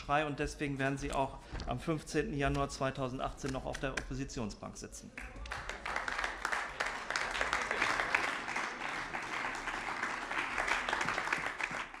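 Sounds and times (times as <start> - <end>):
crowd applauding: 5.2 - 12.0.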